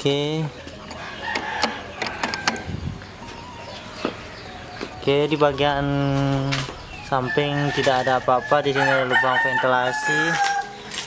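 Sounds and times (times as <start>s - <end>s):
chickens clucking: 0.0s - 11.0s.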